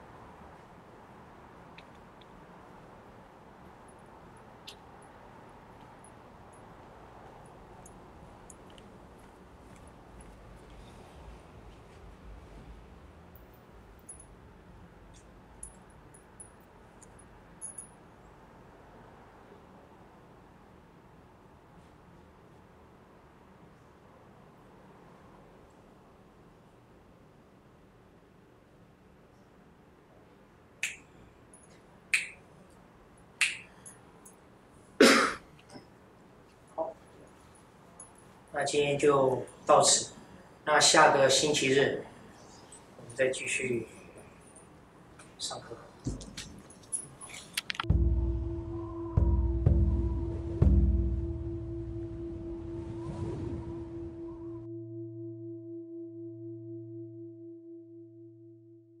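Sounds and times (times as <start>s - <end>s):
sharp finger snaps: 30.8s - 31.1s, 32.1s - 32.4s, 33.4s - 33.8s
ringing tone with wavering beat: 53.8s - 59.0s.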